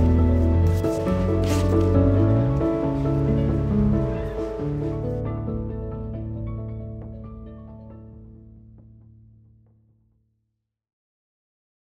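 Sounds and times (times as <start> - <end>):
background music with held notes: 0.0 - 9.8.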